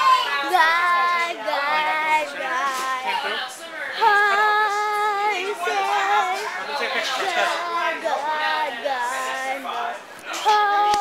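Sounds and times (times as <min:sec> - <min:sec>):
child singing: 0:00.0 - 0:09.8, 0:10.4 - 0:11.0.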